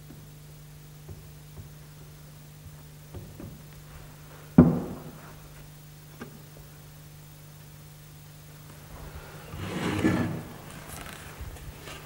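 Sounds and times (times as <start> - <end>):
steady low hum: 0.0 - 12.0
sharp wooden knock: 4.6 - 5.1.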